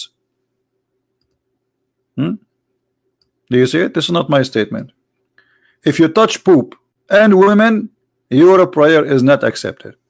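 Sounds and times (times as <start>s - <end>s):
faint low hum: 0.0s - 10.0s
very faint clicks: 1.2s - 1.4s, 3.2s - 3.5s.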